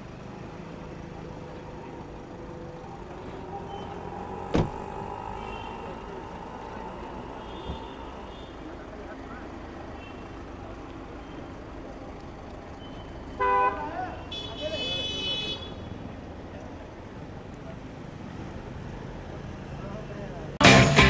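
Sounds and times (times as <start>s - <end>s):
street traffic noise: 0.0s - 21.0s
car horn toot: 13.4s - 15.8s.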